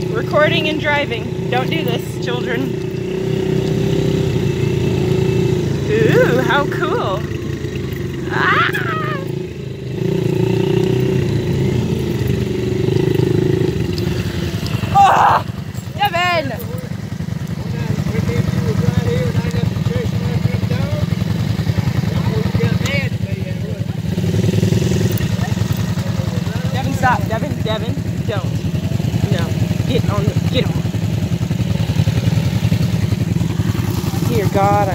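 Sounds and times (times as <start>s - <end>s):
atv engine running: 0.0s - 34.9s
person shouting: 5.8s - 6.7s, 8.2s - 9.4s, 14.9s - 15.6s.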